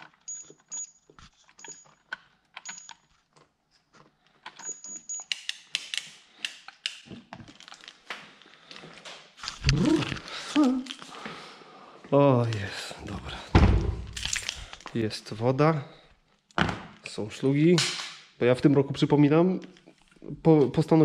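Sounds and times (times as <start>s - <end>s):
thump: 13.5s - 14.1s.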